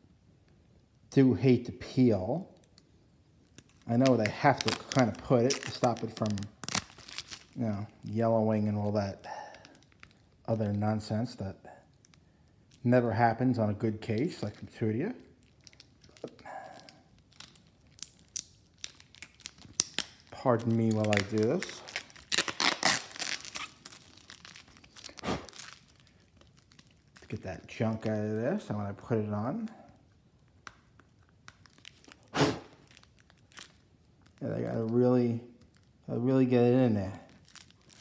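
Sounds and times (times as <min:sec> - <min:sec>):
crackling rustle: 0:02.5 - 0:11.2, 0:14.1 - 0:38.0
plastic crinkling: 0:02.5 - 0:11.2, 0:13.5 - 0:38.0.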